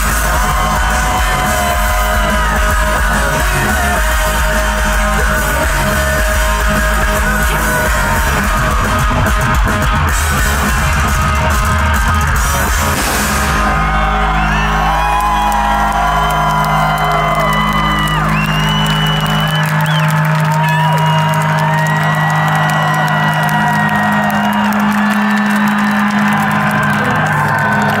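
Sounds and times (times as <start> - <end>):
crowd cheering and whistling: 0.0 - 28.0.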